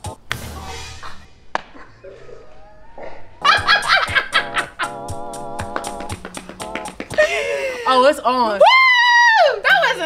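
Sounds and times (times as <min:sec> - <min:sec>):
background music: 0:03.4 - 0:08.6
women shrieking with laughter: 0:08.6 - 0:09.6.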